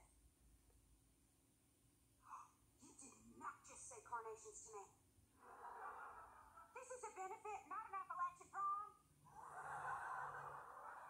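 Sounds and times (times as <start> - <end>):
studio audience laughing: 5.4 - 6.8, 9.3 - 11.0.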